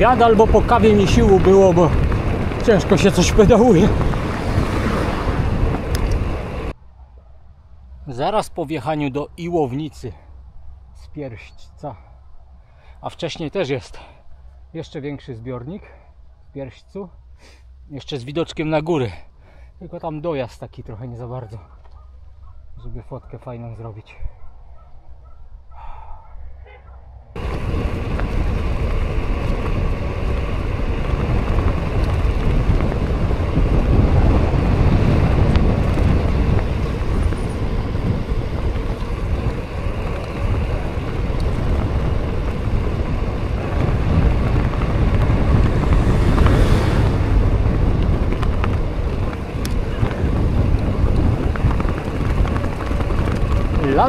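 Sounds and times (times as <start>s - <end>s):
wind buffeting microphone: 0.0s - 11.0s, 24.2s - 54.0s
road noise: 0.0s - 54.0s.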